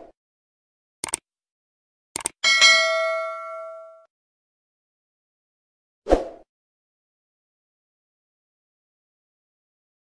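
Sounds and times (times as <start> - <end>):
mouse clicks: 1.0 - 1.2, 2.2 - 2.4
notification bell ding: 2.4 - 4.1.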